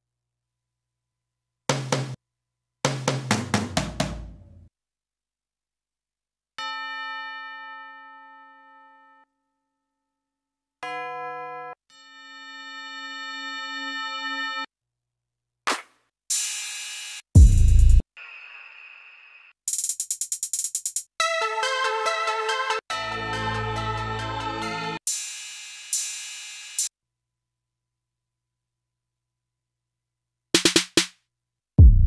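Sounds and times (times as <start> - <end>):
tom drum hits: 2.9 - 4.5.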